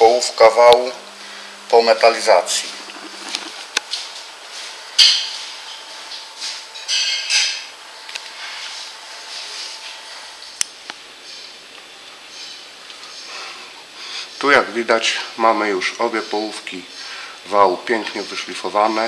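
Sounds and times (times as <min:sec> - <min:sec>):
faint steady high hum: 0:00.0 - 0:19.0.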